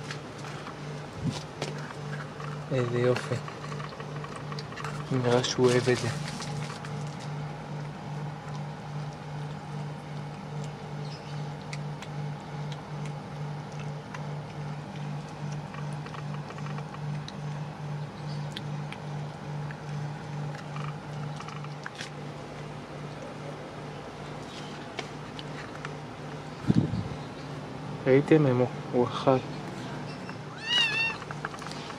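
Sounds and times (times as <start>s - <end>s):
pulsing mechanical hum: 0.0s - 31.9s
kitten chewing corn clicks: 0.1s - 26.5s.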